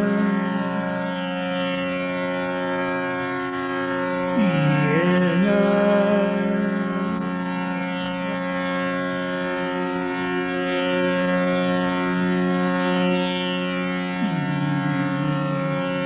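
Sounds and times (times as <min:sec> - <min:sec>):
man singing classical vocal: 0:00.0 - 0:01.1, 0:04.4 - 0:07.4, 0:14.2 - 0:16.0
continuous drone: 0:00.0 - 0:16.0.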